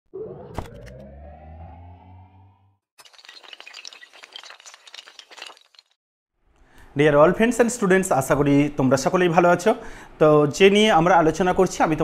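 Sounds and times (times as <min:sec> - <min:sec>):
low tone with rising sweep: 0:00.2 - 0:02.7
shattering clatter of clicks: 0:03.0 - 0:06.0.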